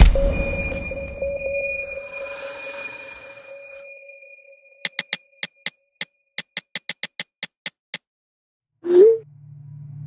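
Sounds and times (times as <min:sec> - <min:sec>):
pitched ticks of a beat: 0:04.8 - 0:08.0.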